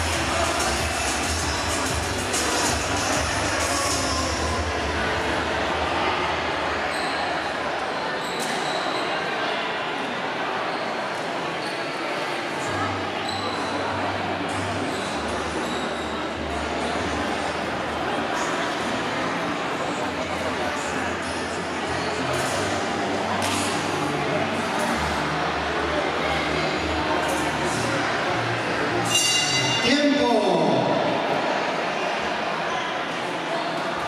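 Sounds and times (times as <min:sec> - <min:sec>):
background music with bass line: 0:00.0 - 0:05.2
crowd chatter: 0:00.0 - 0:34.0.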